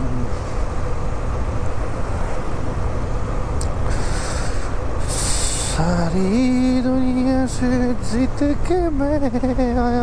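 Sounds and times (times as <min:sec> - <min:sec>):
brief hiss: 0:03.8 - 0:05.8.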